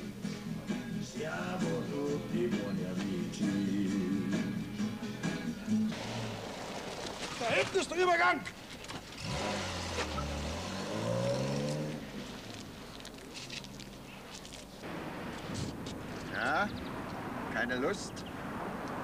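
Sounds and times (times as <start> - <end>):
car engine accelerating: 5.9 - 7.2, 9.1 - 12.7.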